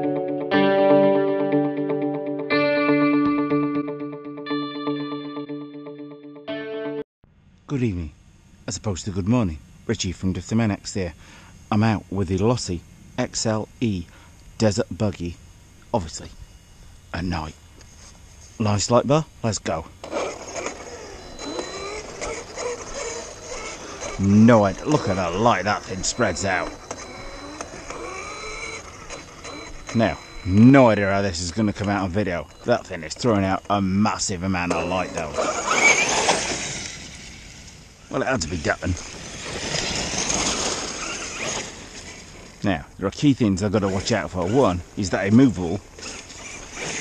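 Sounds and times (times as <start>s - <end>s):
electric motor whine: 19.5s - 42.6s, 43.6s - 47.0s
rc car tyres rushing hiss: 20.0s - 29.6s, 35.3s - 42.6s, 45.9s - 47.0s.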